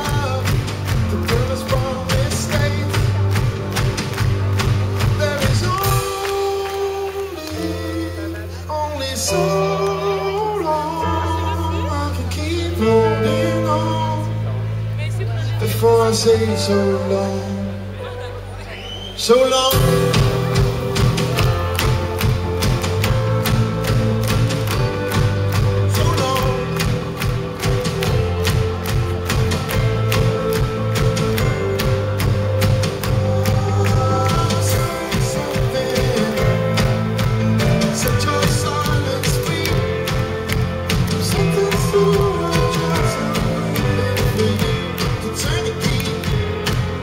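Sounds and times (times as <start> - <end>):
drum beat: 0.0 - 7.0, 19.7 - 47.0
keyboard: 0.0 - 47.0
electric bass guitar: 19.6 - 47.0.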